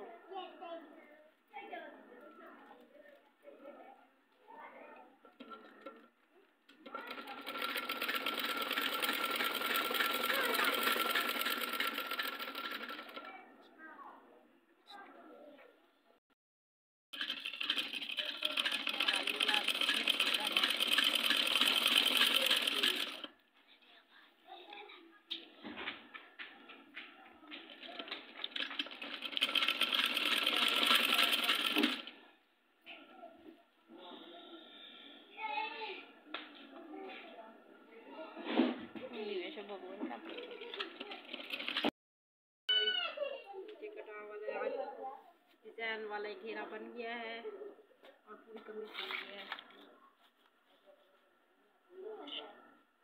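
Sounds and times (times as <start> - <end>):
sewing machine stitching: 5.3 - 6.1, 6.7 - 13.3, 17.1 - 23.4, 27.6 - 32.3, 40.2 - 41.9.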